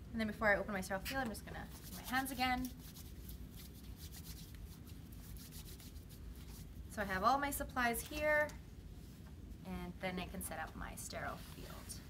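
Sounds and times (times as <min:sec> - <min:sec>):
hands rubbing together: 0:01.6 - 0:06.7.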